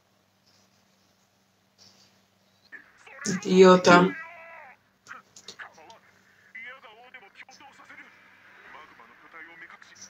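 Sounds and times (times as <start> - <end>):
people talking: 3.0 - 4.2, 6.6 - 10.0
person shouting: 3.0 - 4.8.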